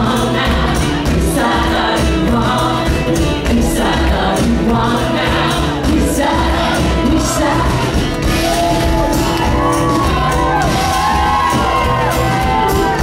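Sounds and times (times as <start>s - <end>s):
woman singing: 0.0s - 8.4s
bass: 0.0s - 13.0s
drum kit: 0.0s - 13.0s.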